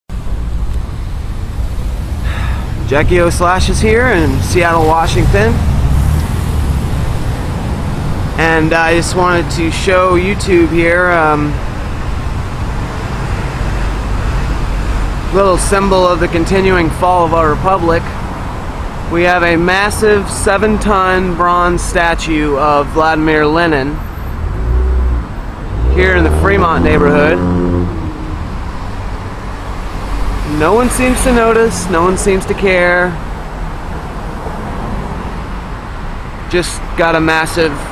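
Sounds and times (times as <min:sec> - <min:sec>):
city street low rumble: 0:00.1 - 0:37.9.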